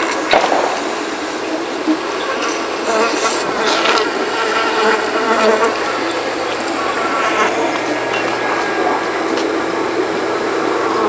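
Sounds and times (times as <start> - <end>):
electronic buzzing drone: 0.0 - 11.0.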